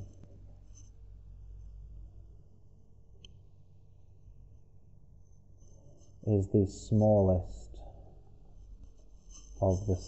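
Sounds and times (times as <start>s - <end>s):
small click: 3.2s - 3.4s.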